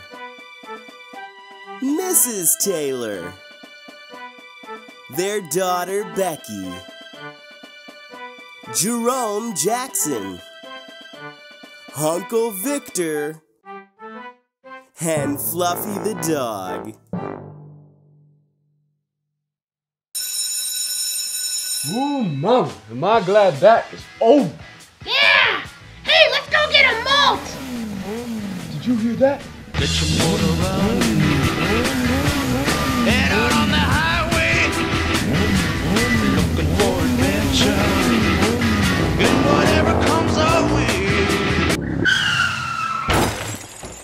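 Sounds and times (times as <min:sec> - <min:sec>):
music: 0:00.0 - 0:18.6, 0:21.8 - 0:42.0
electric school bell ringing: 0:20.2 - 0:22.2
comic engine rising and falling: 0:36.8 - 0:42.4
tyre squeals: 0:42.0 - 0:43.2.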